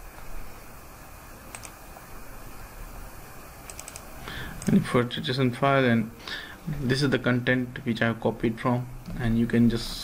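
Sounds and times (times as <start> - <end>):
keyboard key clicks: 1.5 - 1.8, 3.7 - 4.0
man talking: 4.6 - 10.0.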